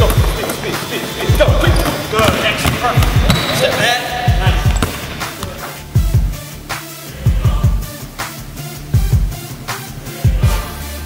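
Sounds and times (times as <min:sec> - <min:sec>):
basketballs bouncing on hardwood floor: 0:00.0 - 0:06.4.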